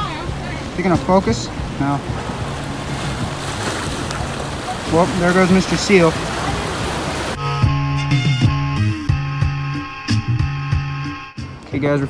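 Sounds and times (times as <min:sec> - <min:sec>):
waves churning against rocks: 0:00.0 - 0:07.4
wind buffeting microphone: 0:00.0 - 0:07.4.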